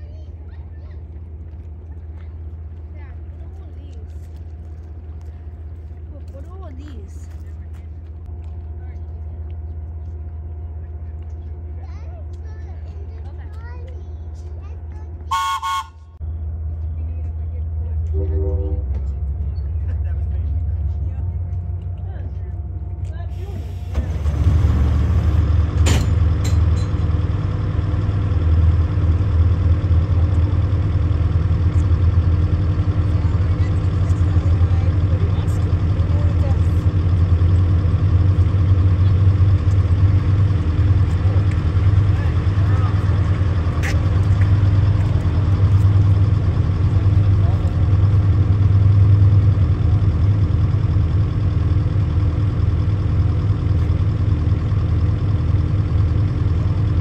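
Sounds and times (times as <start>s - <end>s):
trolley car rumbling on track: 0.0s - 57.0s
faint voices: 38.5s - 48.4s.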